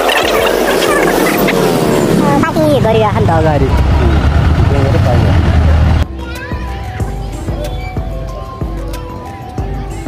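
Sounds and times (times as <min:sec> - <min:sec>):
truck engine running: 0:00.0 - 0:06.0.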